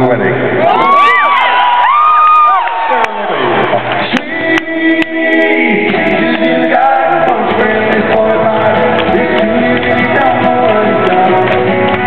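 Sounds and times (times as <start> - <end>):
crowd noise: 0.0 - 12.0
live band playing: 5.4 - 12.0.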